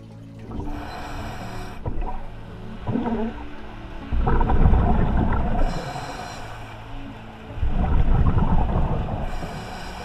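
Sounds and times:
underwater regulator bubbles: 0.0 - 6.4, 7.6 - 9.8
soft background music: 0.0 - 10.0.

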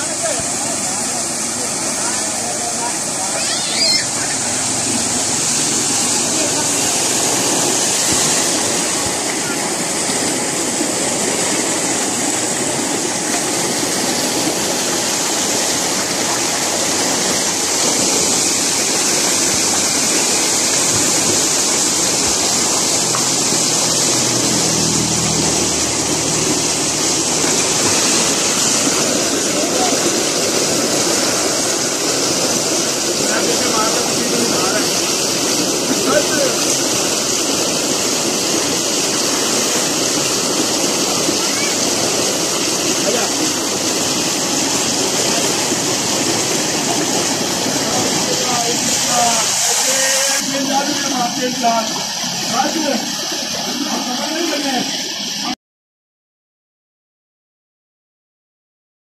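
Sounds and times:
water gushing into tank: 0.0 - 55.6.

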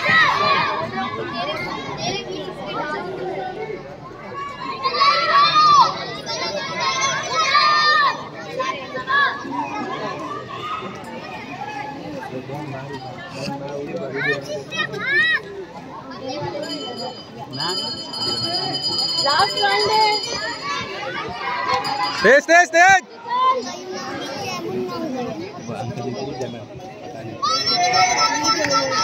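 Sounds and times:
children calling and chattering: 0.0 - 29.0
child's high-pitched shout: 27.4 - 29.0.

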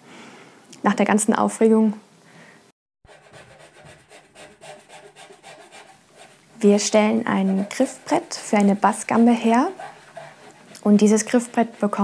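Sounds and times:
hand tool strokes on wood: 3.1 - 12.0.

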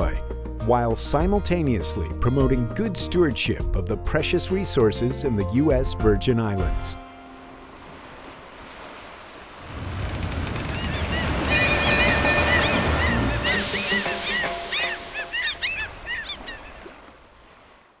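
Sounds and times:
surf washing in: 7.2 - 18.0
gull calls: 10.6 - 17.0.

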